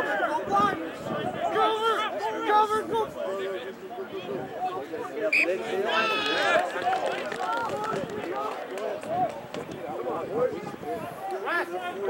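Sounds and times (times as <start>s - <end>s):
voices shouting over one another: 0.0s - 3.2s, 4.3s - 8.5s.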